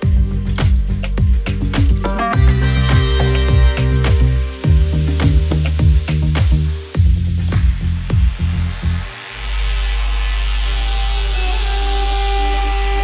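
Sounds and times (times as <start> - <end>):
electronic beat and percussion: 0.0 - 9.2
deep bass drone: 0.0 - 13.0
wavering high synth tones: 7.6 - 13.0.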